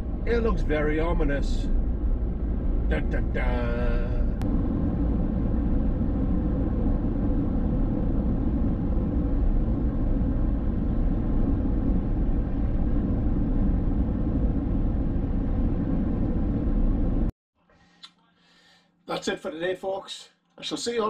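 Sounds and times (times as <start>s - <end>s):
car road and engine rumble: 0.0s - 17.3s.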